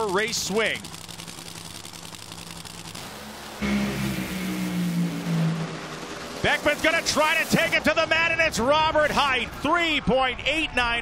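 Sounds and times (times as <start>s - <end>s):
drag car engines idling: 0.0s - 10.4s
drag car engines at full throttle: 0.0s - 11.0s.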